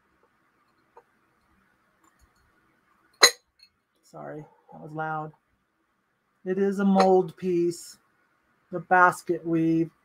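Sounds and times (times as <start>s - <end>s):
glass lid clinking on glass: 3.2s - 3.7s.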